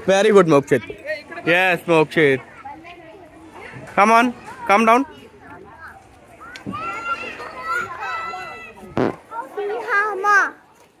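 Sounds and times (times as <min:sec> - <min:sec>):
sharp thump: 0:08.9 - 0:09.2.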